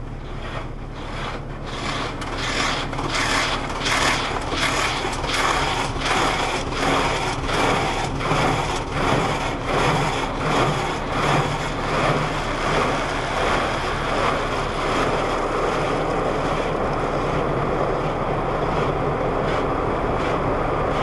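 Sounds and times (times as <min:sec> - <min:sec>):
car wash brushes swishing: 0:00.0 - 0:21.0
steady machine hum: 0:00.0 - 0:21.0.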